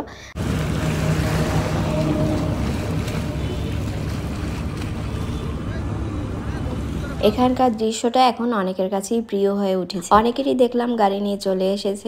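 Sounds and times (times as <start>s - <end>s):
river waves lapping on bank: 0.3s - 7.8s
wind rumbling on microphone: 0.4s - 7.6s.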